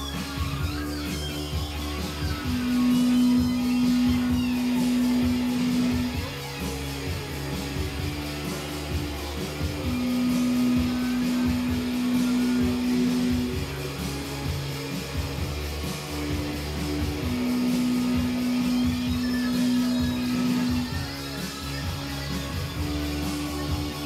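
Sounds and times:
live band with guitar: 0:00.0 - 0:24.0.

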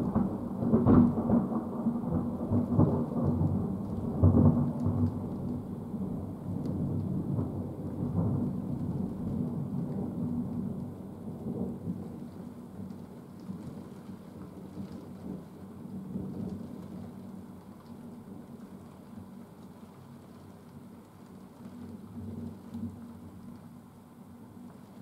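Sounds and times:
thunder rumbling: 0:00.0 - 0:17.5
rain falling: 0:00.0 - 0:25.0.

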